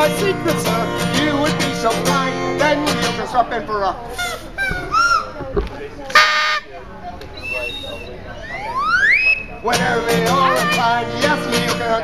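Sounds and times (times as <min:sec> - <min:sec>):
hand-held whistle toot: 0:07.4 - 0:09.5
faint high whistle tone: 0:07.4 - 0:09.6.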